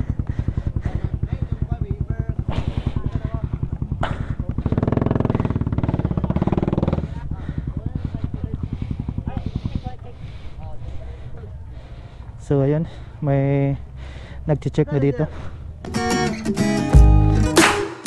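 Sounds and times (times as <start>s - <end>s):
motorcycle engine idling: 0.0s - 15.8s.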